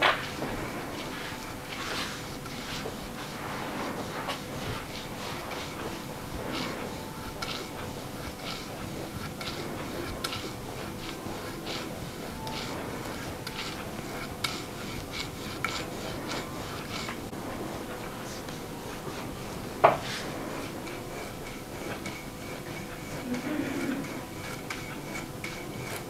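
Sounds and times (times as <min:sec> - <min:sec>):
metal scraper stroking skin: 0:00.6 - 0:17.3, 0:20.0 - 0:26.0.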